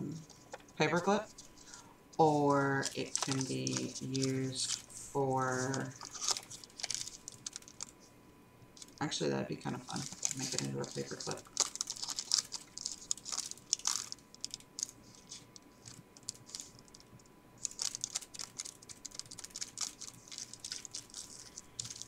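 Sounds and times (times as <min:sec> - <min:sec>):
paper crinkling and rustling: 0:00.2 - 0:08.1, 0:08.8 - 0:09.0, 0:09.7 - 0:22.0.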